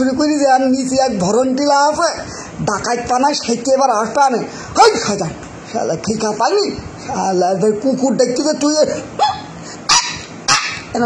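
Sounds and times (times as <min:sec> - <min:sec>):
dog barking sharply: 0:09.2 - 0:10.9
dog yelping: 0:09.2 - 0:11.0.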